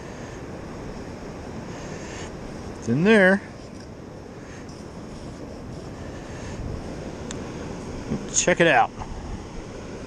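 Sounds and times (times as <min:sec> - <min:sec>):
wind noise: 0:00.0 - 0:10.0
man speaking: 0:02.8 - 0:03.5, 0:08.1 - 0:09.0.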